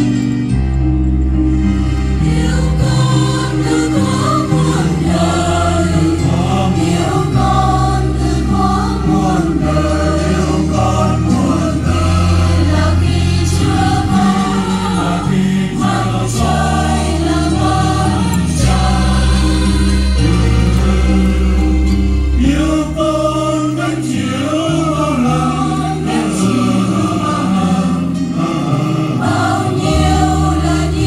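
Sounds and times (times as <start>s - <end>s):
instrumental accompaniment: 0.0s - 31.0s
choir singing a hymn: 1.5s - 31.0s.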